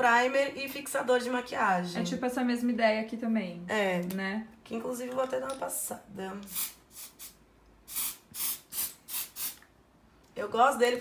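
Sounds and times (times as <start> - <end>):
spray bottle misting: 6.4 - 9.6.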